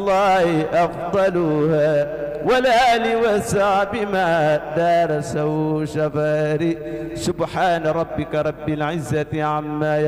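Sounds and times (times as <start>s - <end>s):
man chanting devotional poetry: 0.0s - 10.0s.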